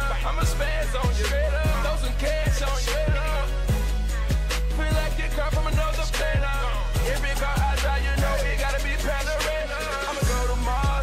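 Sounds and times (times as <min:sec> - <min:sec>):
hip hop track: 0:00.0 - 0:11.0.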